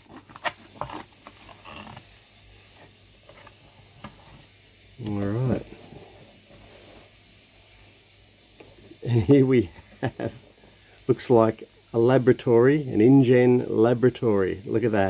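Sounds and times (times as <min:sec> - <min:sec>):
cardboard packaging rustling: 0:00.0 - 0:02.2.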